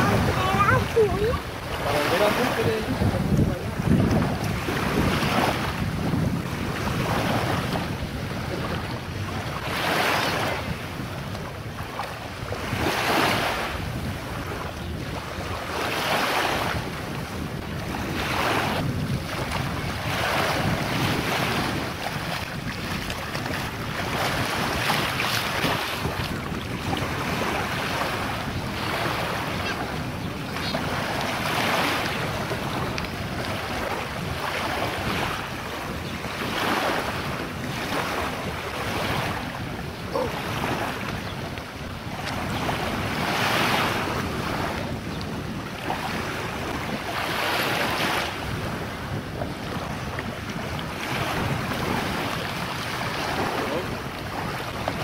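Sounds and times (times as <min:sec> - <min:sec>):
sea water sloshing and lapping: 0:00.0 - 0:55.0
wind rumble on microphone: 0:00.0 - 0:55.0.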